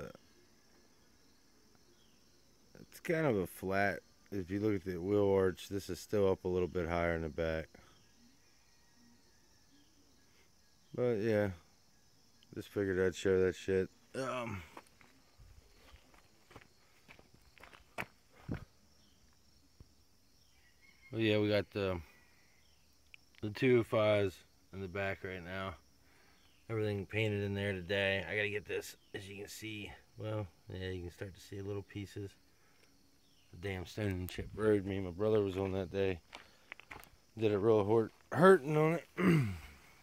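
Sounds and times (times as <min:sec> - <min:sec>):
insects chirring: 0:00.0 - 0:40.0
footsteps on gravel: 0:14.6 - 0:18.7, 0:35.6 - 0:37.2, 0:38.0 - 0:38.4
person speaking: 0:37.4 - 0:39.8.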